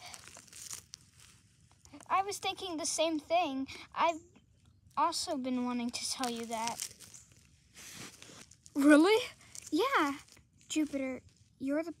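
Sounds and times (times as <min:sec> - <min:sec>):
sharp crackle: 0:00.0 - 0:02.1, 0:05.6 - 0:11.6
snow crunching and crinkling: 0:00.0 - 0:02.1, 0:05.7 - 0:11.2.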